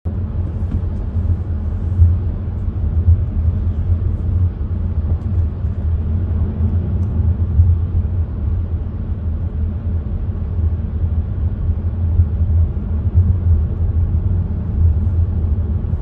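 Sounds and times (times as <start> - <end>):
car cabin road rumble: 0.0 - 16.0.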